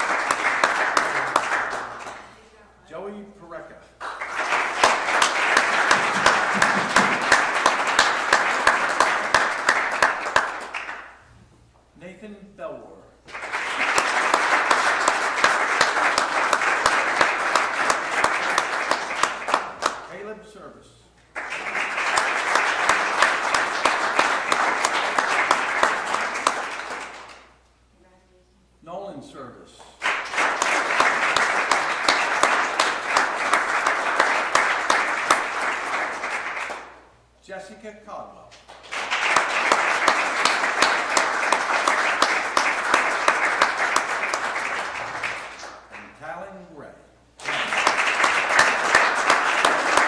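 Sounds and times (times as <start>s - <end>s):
audience applauding: 0.0s - 2.4s, 4.0s - 11.2s, 13.3s - 20.0s, 21.3s - 27.5s, 30.0s - 37.0s, 38.7s - 46.2s, 47.4s - 50.0s.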